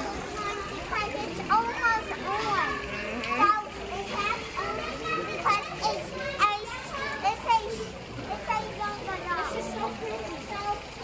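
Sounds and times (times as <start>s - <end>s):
fountain jets splashing: 0.0s - 11.0s.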